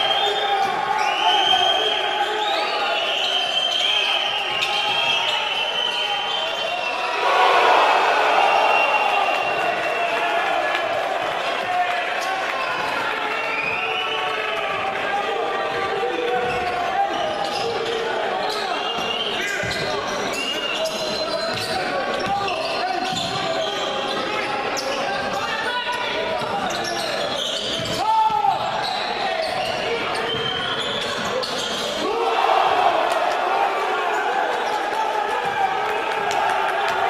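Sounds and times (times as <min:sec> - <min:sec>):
voices of players and spectators: 0:00.0 - 0:37.0.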